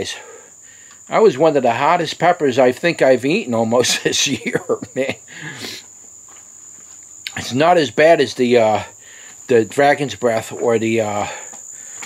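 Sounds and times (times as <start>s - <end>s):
insect trill: 0.0s - 12.0s
man exhaling: 5.3s - 5.9s.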